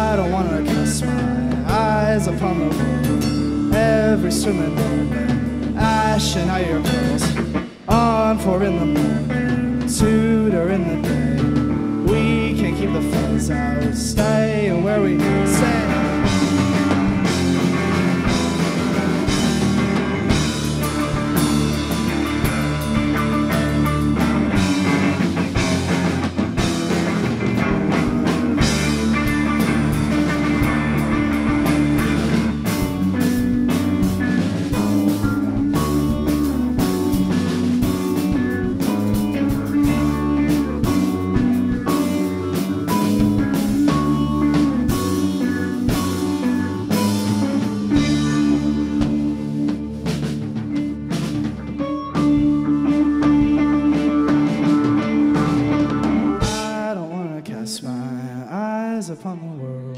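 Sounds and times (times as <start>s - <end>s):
drum kit: 0.0s - 57.2s
bass guitar: 0.0s - 58.5s
electric guitars: 0.0s - 58.6s.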